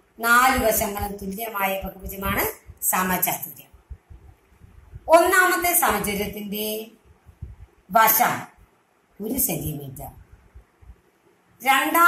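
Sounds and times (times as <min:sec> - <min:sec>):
woman speaking: 0:00.2 - 0:03.8, 0:04.9 - 0:08.6, 0:09.2 - 0:10.3, 0:11.6 - 0:12.0.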